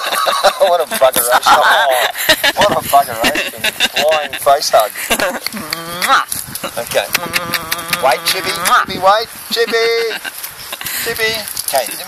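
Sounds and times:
person laughing in breathy bursts: 0:00.0 - 0:08.8, 0:09.5 - 0:11.3
person speaking: 0:00.0 - 0:12.0.

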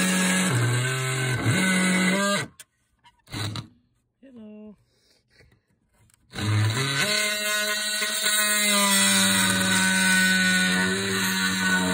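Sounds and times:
power drill boring into wood: 0:00.0 - 0:02.6, 0:03.3 - 0:03.7, 0:06.3 - 0:11.9.

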